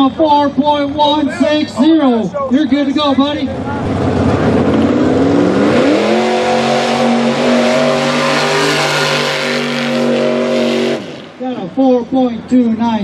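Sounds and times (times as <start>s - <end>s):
truck engine revving hard: 3.4s - 11.4s.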